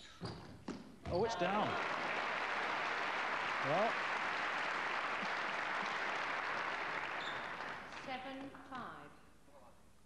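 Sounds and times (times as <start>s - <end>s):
audience applauding: 1.3s - 8.3s.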